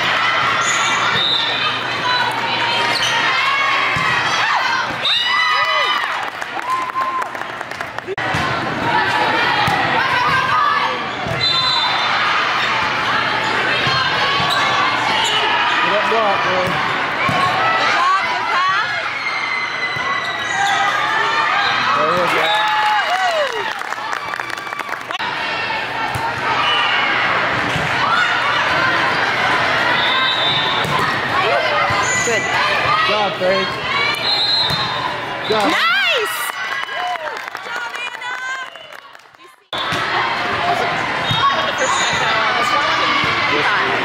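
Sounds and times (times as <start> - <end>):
players and spectators shouting: 0.0 - 7.2, 8.2 - 23.8, 25.1 - 44.0.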